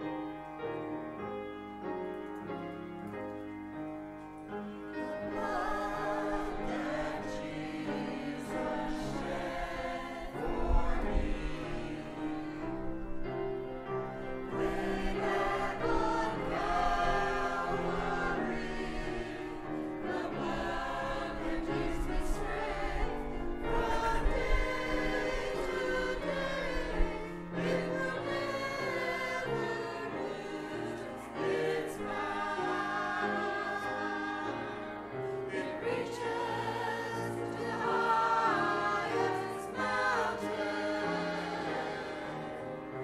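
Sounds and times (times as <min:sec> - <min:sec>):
small mixed choir singing: 0:04.9 - 0:43.0.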